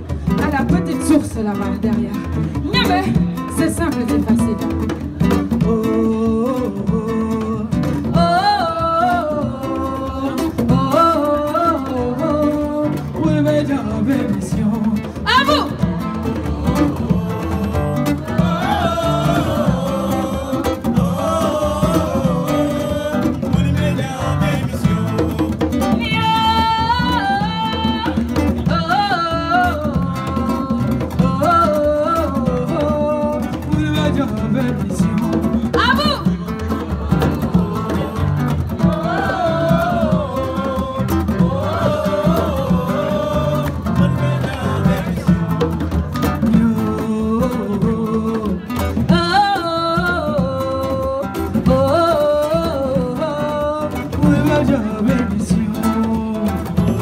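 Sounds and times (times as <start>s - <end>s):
acoustic guitar: 0.0s - 57.0s
woman singing: 0.0s - 57.0s
drum kit: 14.2s - 57.0s.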